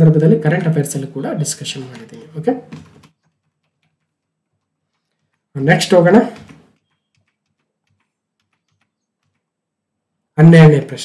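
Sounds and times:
faint keyboard clicks: 0:01.8 - 0:09.6.

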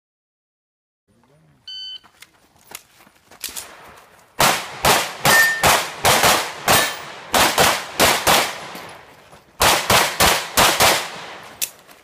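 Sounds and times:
pistol firing rapid shots: 0:04.4 - 0:08.8, 0:09.6 - 0:11.6.

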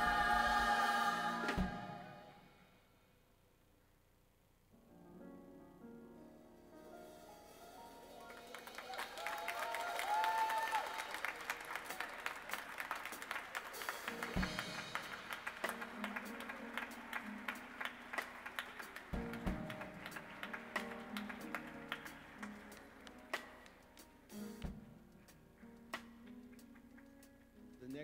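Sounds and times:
congregation applauding: 0:08.2 - 0:24.4.

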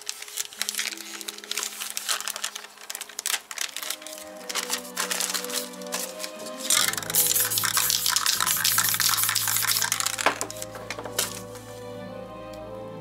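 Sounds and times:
background music: 0:00.0 - 0:13.0
spray paint can hissing: 0:04.5 - 0:11.7.

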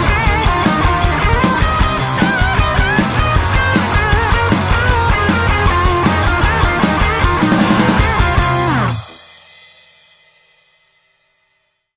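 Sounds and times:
rock band playing loud: 0:00.0 - 0:09.4.

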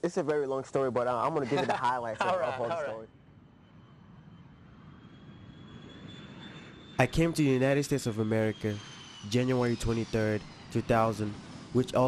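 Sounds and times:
faint high whine: 0:00.0 - 0:12.0
jet engine rumble: 0:00.0 - 0:12.0.

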